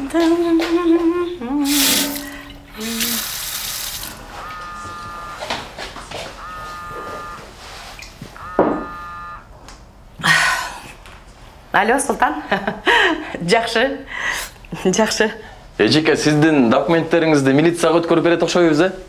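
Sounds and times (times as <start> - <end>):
water running from tap: 1.7 - 4.6
phone ringtone ringing: 4.2 - 5.4, 6.4 - 7.5, 8.4 - 9.4.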